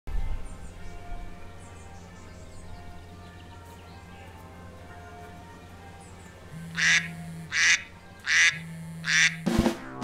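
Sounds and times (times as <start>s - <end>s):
drum-led music: 6.6s - 10.0s
phone alarm duck quacks: 6.6s - 10.0s.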